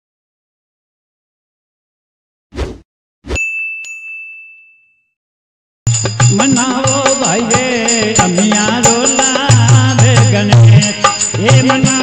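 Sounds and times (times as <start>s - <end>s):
bright bell ding: 3.4s - 5.1s
music with singing: 5.9s - 12.0s.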